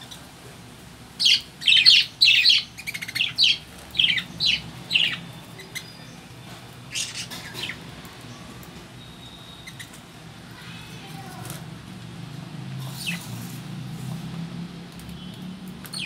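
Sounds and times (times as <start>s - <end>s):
budgerigars calling: 1.2s - 6.2s, 6.9s - 7.8s.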